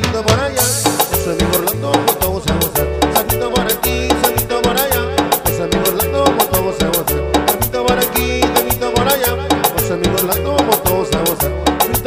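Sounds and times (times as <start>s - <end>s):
instrumental dance music: 0.0s - 12.0s.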